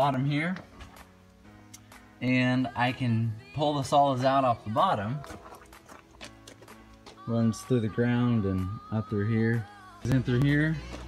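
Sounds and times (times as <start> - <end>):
footsteps on gravel: 5.0 - 7.8, 10.1 - 11.0.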